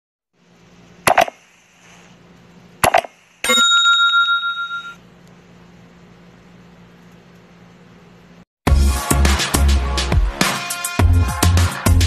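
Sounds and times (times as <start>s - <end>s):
bright bell ding: 3.4s - 5.0s.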